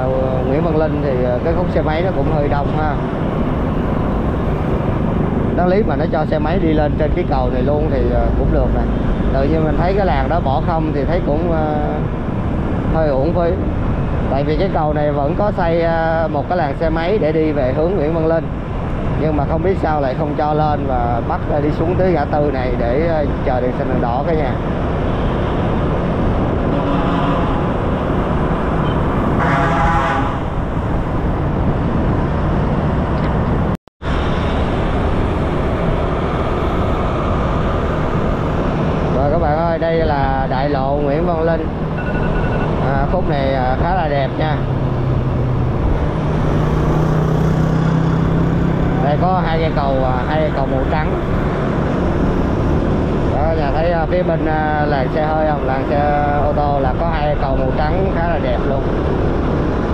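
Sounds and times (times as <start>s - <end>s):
passing motorbikes and cars: 0.0s - 59.9s
wind and road noise: 0.0s - 59.9s.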